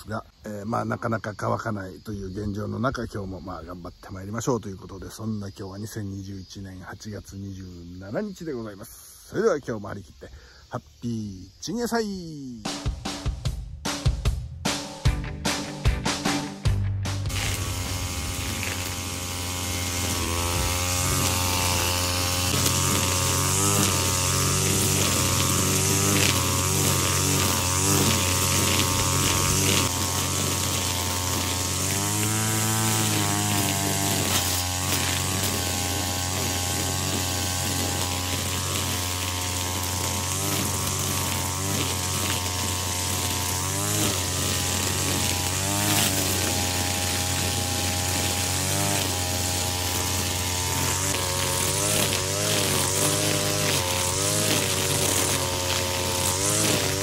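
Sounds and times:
brush cutter engine revving: 17.3 - 57.0
trimmer line whipping grass: 17.3 - 57.0.

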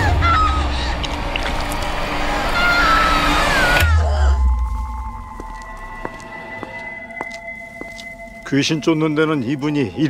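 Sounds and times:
woman screaming: 0.0 - 0.9, 2.4 - 4.5
eerie drone: 0.0 - 10.0.

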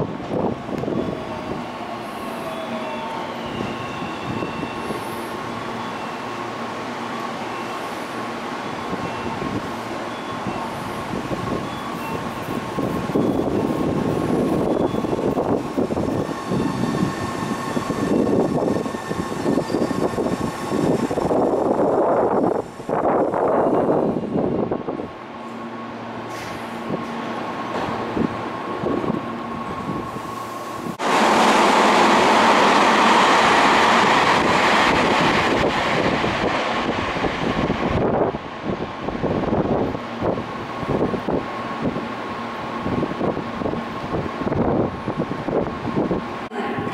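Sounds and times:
electric train rumbling: 0.0 - 46.9.

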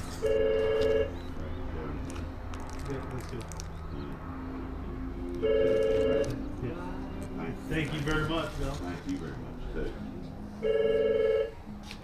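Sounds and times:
telephone ringing: 0.2 - 1.2, 5.4 - 6.4, 10.6 - 11.6.

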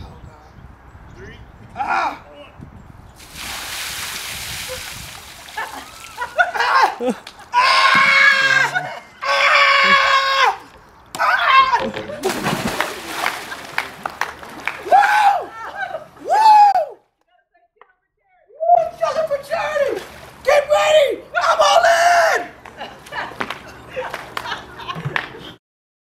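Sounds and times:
splash into swimming pool: 3.2 - 6.6, 12.2 - 15.2.

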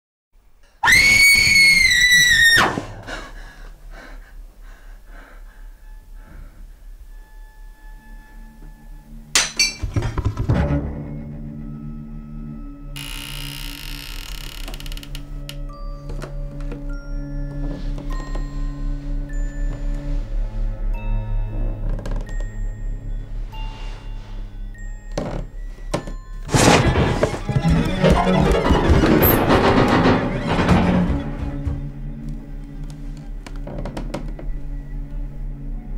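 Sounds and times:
high-pitched scream: 0.8 - 2.8
loud crashing burst: 26.5 - 31.3.

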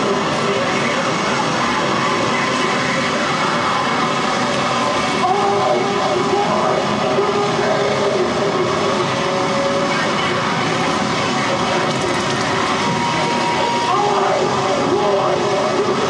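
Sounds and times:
harsh electronic noise: 0.0 - 16.0.

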